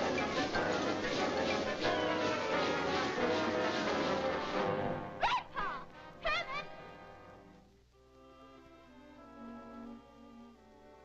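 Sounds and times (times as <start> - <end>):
soft orchestral music: 0.0 - 11.0.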